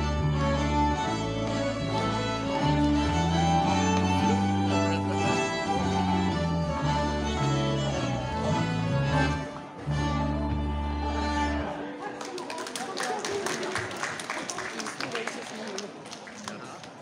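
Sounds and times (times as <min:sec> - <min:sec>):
accordion: 0:00.0 - 0:12.2
fiddles: 0:00.0 - 0:12.2.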